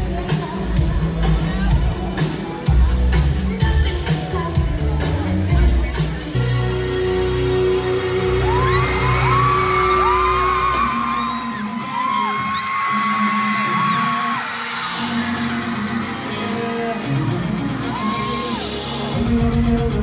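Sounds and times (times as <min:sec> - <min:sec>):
live music over pa: 0:00.0 - 0:20.0
crowd screaming: 0:08.0 - 0:19.3.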